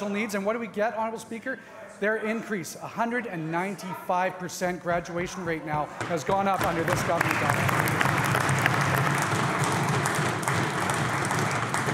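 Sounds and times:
crowd applauding: 0:06.4 - 0:11.9.

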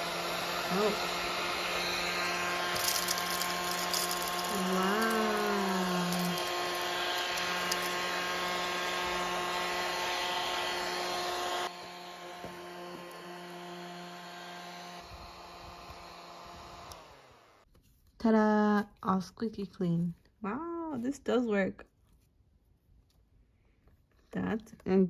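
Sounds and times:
desktop vacuum motor whining: 0:00.0 - 0:17.7.

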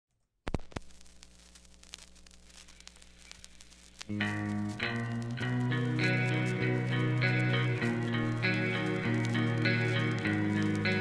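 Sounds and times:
guitar amp hum and hiss: 0:00.5 - 0:11.0
small ticks: 0:00.5 - 0:11.0.

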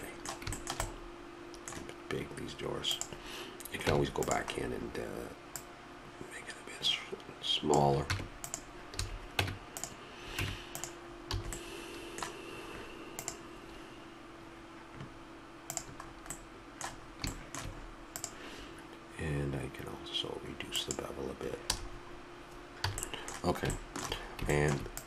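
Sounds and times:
keyboard keys clicking: 0:00.2 - 0:01.0, 0:15.7 - 0:18.4.

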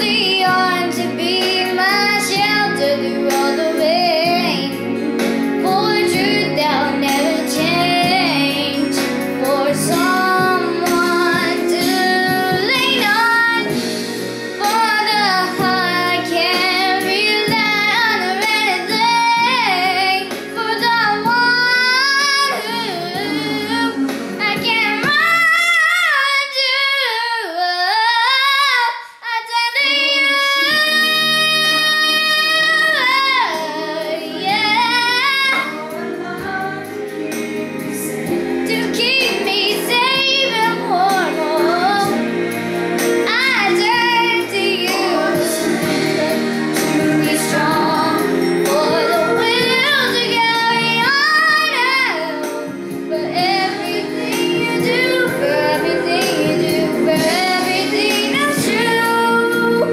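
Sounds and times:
girl singing a pop ballad: 0:00.0 - 0:59.9
backing accompaniment: 0:29.8 - 0:59.9.

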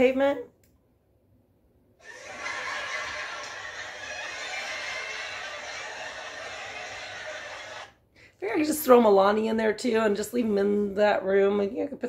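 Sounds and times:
canned audience laughter: 0:02.0 - 0:07.9.

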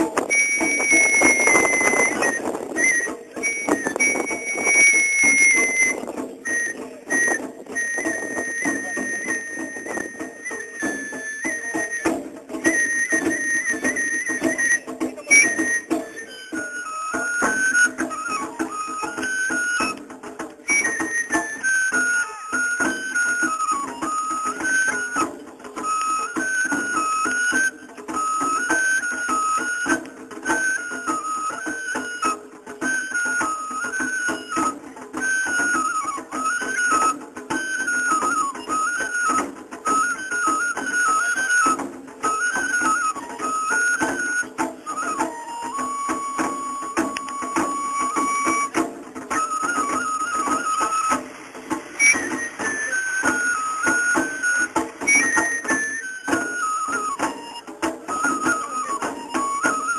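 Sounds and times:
bamboo flute melody: 0:00.0 - 0:59.9.

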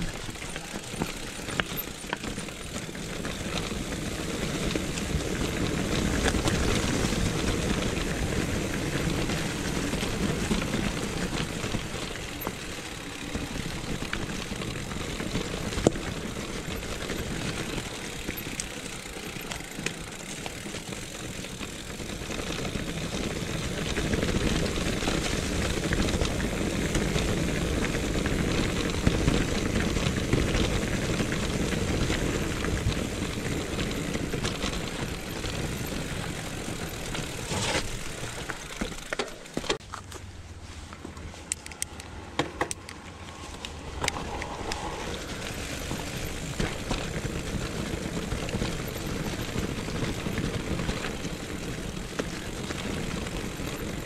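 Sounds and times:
bike rattling and clicking: 0:00.0 - 0:54.0
bike tyres rumbling on stones: 0:00.0 - 0:54.0.

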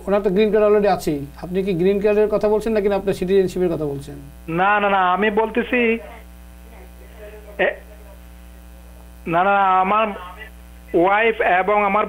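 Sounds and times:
mains hum: 0:00.0 - 0:12.0
voice over telephone line: 0:03.8 - 0:12.0.

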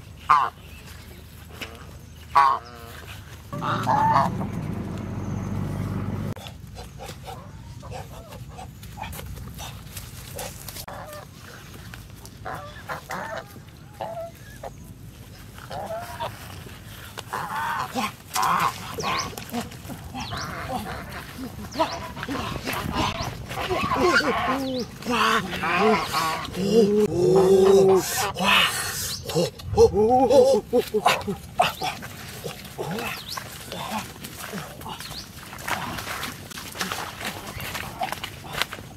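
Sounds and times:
geese honking: 0:00.3 - 0:00.6, 0:01.6 - 0:08.7, 0:12.4 - 0:14.7, 0:20.2 - 0:26.6.

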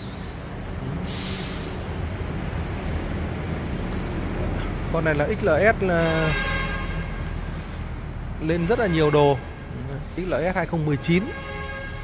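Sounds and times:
steady low rumble: 0:00.4 - 0:05.9.

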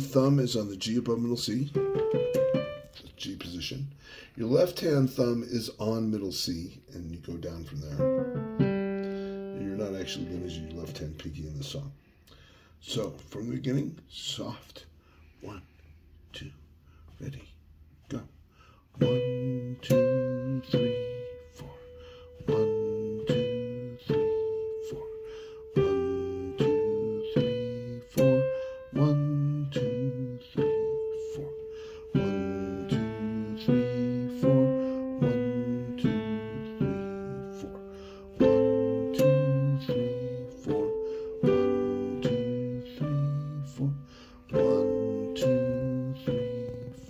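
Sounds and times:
digital piano slow piece: 0:01.5 - 0:03.6, 0:07.8 - 0:11.7, 0:18.9 - 0:47.0.

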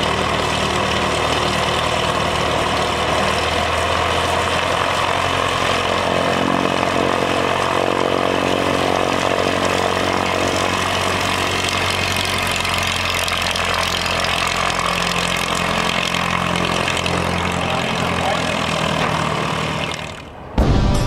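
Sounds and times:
light airplane engine running: 0:00.0 - 0:21.0.

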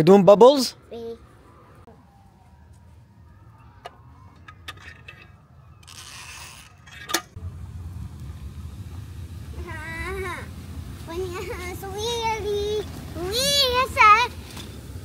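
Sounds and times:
child's excited voice: 0:00.9 - 0:01.3, 0:09.6 - 0:14.4.

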